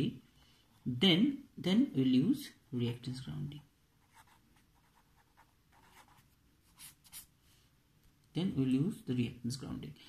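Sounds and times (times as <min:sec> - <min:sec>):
pen scratching on paper: 0:04.0 - 0:07.3.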